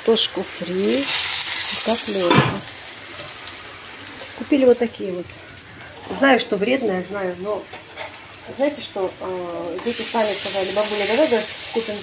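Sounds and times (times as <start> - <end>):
fries sizzling in oil: 0.0 - 12.0.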